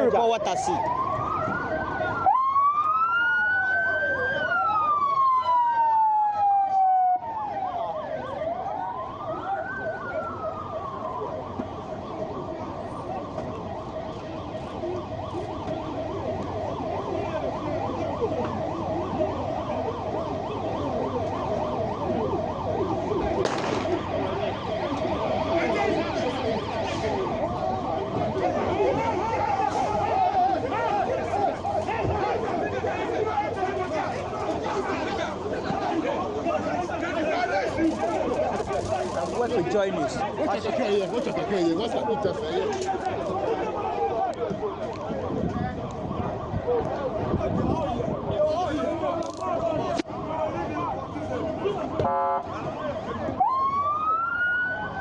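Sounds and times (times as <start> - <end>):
outdoor noise: 0.0 - 55.0
vehicle siren wailing: 0.0 - 55.0.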